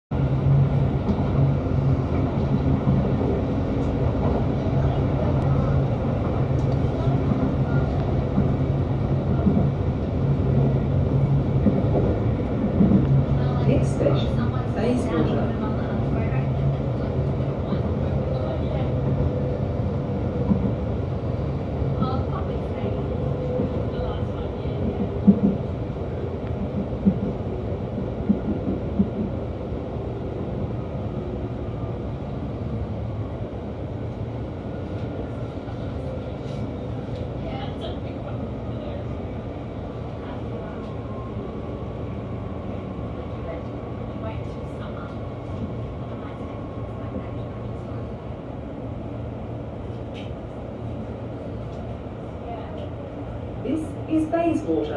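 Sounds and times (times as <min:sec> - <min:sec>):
electric train rumble: 0:00.1 - 0:54.9.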